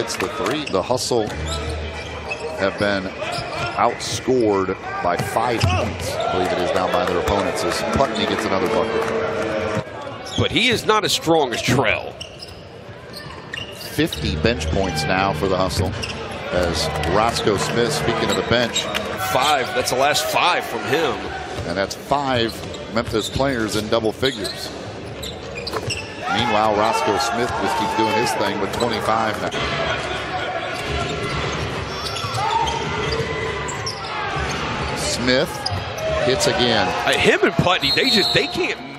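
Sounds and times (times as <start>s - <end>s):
arena crowd noise: 0.0s - 38.9s
crowd murmur: 13.0s - 21.6s
low arena hum: 13.9s - 20.4s.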